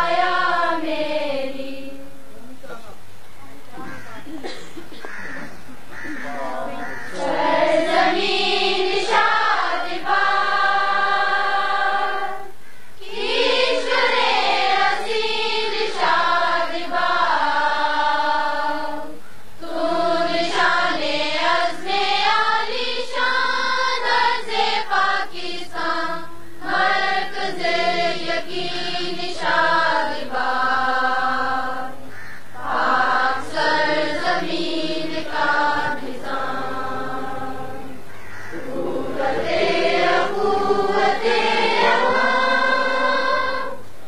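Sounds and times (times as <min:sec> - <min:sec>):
children's choir singing: 0:00.0 - 0:02.4, 0:03.9 - 0:44.0.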